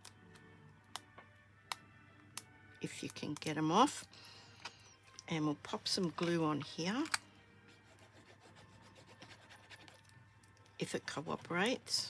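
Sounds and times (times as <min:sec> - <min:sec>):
glue bottle tip scratching card: 0:07.8 - 0:10.0.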